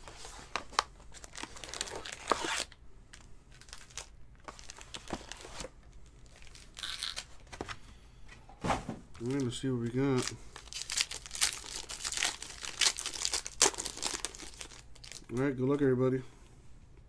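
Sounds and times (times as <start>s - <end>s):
plastic wrap and cardboard ripping: 0.8s - 2.7s, 10.1s - 15.3s.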